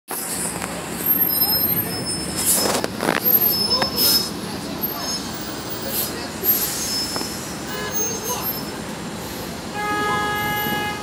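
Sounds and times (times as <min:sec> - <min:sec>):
bus driving past: 0:00.1 - 0:11.0
street traffic: 0:00.1 - 0:11.0
high squeaks: 0:00.4 - 0:08.9.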